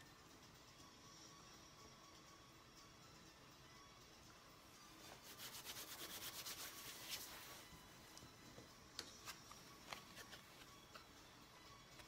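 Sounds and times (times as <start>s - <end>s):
hands rubbing together: 5.2s - 7.4s.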